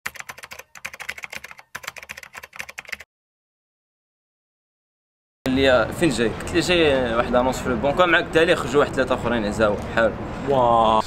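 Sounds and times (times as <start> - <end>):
rapid keyboard typing: 0.1 - 3.1.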